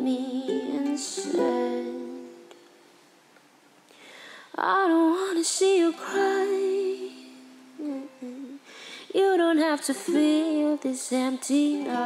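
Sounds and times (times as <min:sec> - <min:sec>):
woman humming: 0:07.8 - 0:08.6, 0:11.7 - 0:12.0.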